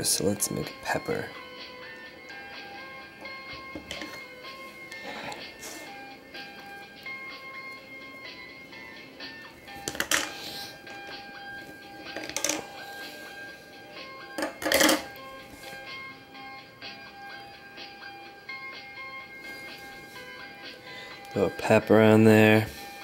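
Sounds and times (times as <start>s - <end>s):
light background music: 0.0s - 23.0s.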